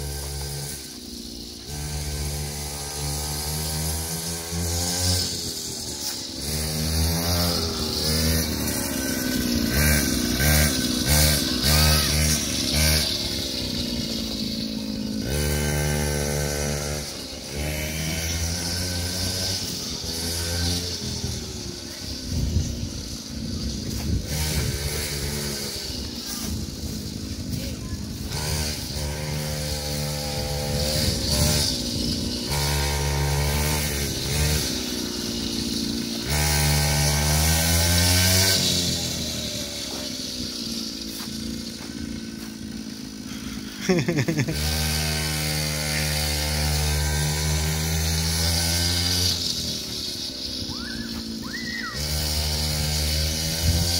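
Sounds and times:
small petrol engine revving: 0.0s - 53.9s.

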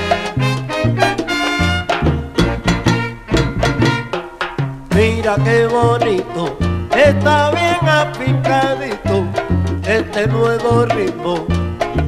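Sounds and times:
salsa band instrumental: 0.0s - 12.0s.

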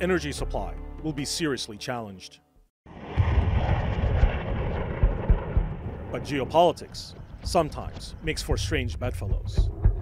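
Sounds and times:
rockets launching: 2.9s - 7.4s
uneven low rumble: 2.9s - 10.0s.

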